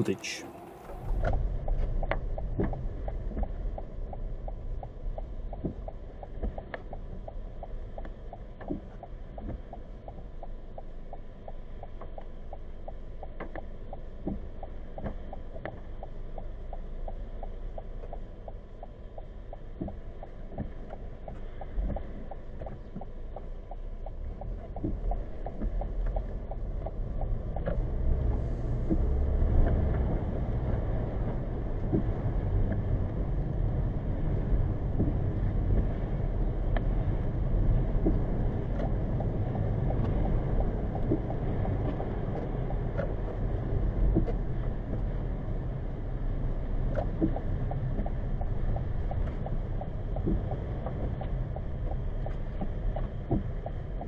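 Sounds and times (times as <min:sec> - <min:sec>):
car cabin road and engine rumble: 0:00.0 - 0:54.0.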